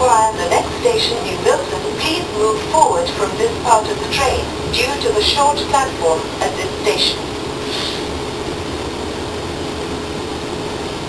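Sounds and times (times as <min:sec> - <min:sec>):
train carriage rumble: 0:00.0 - 0:11.0
brief hiss: 0:07.6 - 0:08.1.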